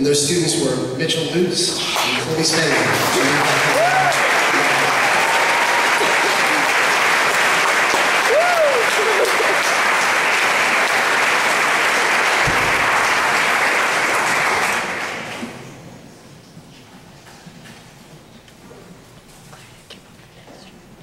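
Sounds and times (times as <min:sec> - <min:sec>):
voice rising and falling: 0:01.6 - 0:04.3
audience applauding: 0:01.8 - 0:15.4.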